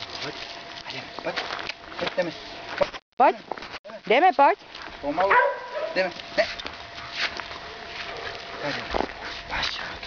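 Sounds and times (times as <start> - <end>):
man speaking: 8.6 - 9.0.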